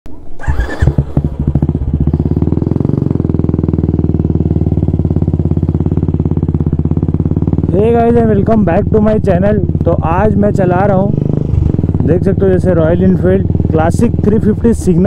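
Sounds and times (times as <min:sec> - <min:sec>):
motorcycle engine running: 0:00.4 - 0:15.0.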